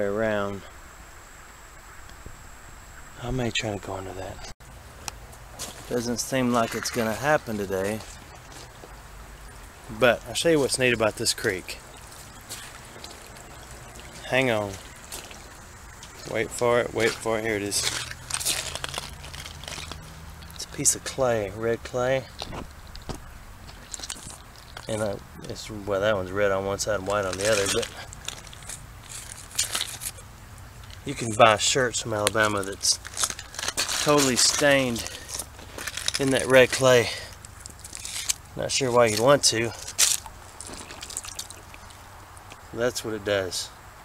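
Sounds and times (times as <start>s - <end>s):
gravel and stones crunching: 3.2s - 43.8s.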